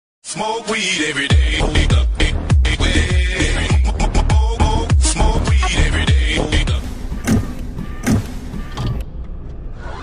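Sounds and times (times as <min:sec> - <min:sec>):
bass-heavy hip hop beat: 0:01.1 - 0:09.0
sharp hits: 0:05.0 - 0:08.8.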